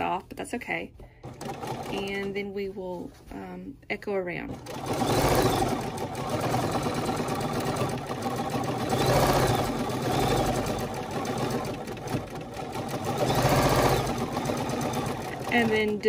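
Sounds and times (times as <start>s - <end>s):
sewing machine stitching: 1.2s - 2.3s, 4.5s - 16.0s.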